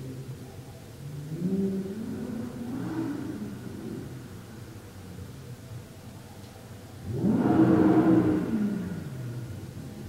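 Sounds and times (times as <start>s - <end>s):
steady low hum: 0.0s - 10.0s
vehicle driving past: 7.1s - 10.0s.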